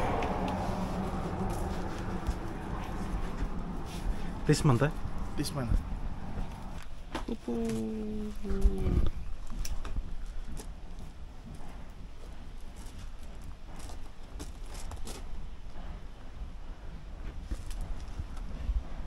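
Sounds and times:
low rumble: 0.0 - 13.5.

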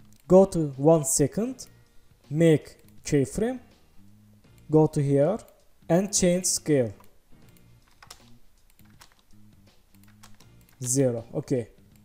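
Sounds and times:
soft background music: 0.0 - 12.0
keyboard typing clicks: 6.9 - 9.3, 9.9 - 11.0.

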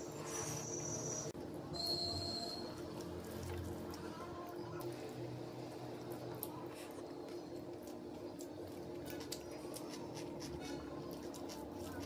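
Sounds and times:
close-up chewing: 5.8 - 12.0.

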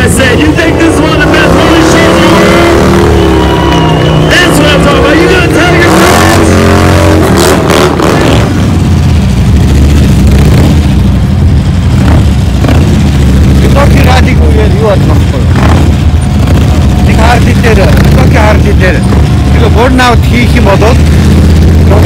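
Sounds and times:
voice over loudspeaker: 0.0 - 2.9
motorcycle engines revving: 0.0 - 22.0.

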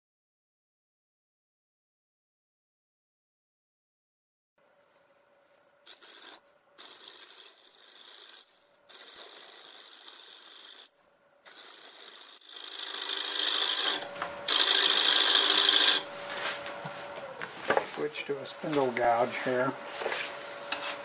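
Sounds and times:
wood lathe gouge cutting: 5.9 - 10.9, 11.5 - 16.1.

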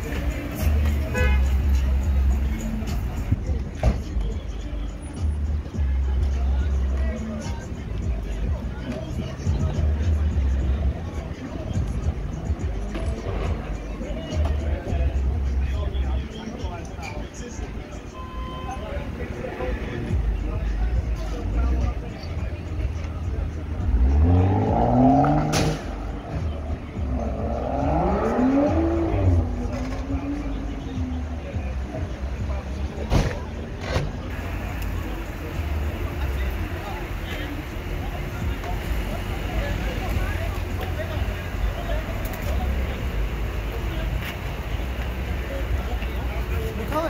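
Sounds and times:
low street rumble: 0.0 - 47.0
music playing: 0.0 - 47.0
voices talking: 0.0 - 47.0
vehicle engine accelerating: 23.6 - 31.7.

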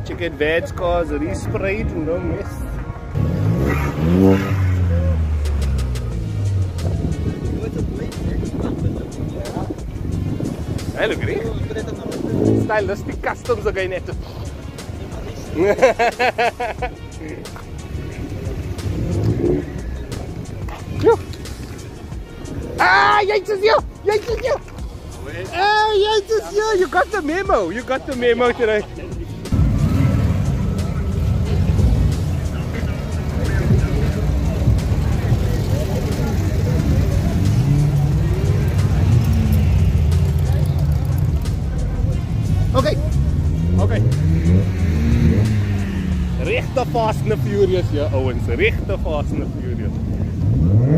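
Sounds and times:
background music: 0.0 - 50.9
low rumble of cars: 0.0 - 50.9
person shouting: 22.8 - 23.5.

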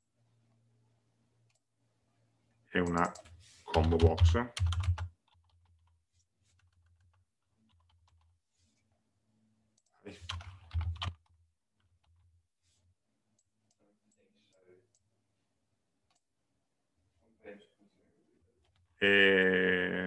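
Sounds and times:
computer keyboard typing: 2.9 - 8.3, 9.8 - 12.2.

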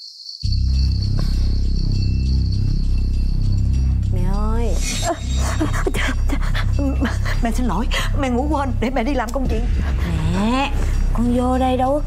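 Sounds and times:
cricket chirr: 0.0 - 6.0
deep drawn-out score tones: 0.5 - 12.0.

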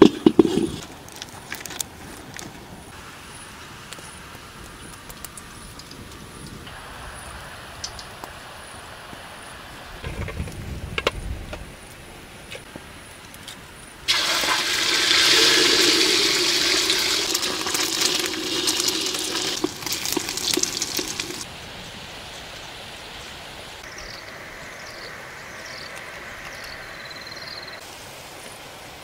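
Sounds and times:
eggs sizzling in hot oil: 14.1 - 21.5.

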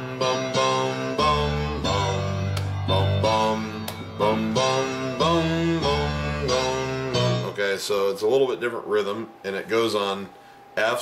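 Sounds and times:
electronic keyboard piano chords: 0.0 - 7.6.

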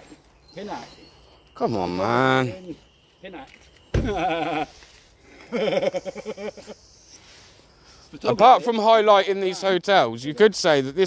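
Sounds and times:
person laughing: 4.0 - 6.9.

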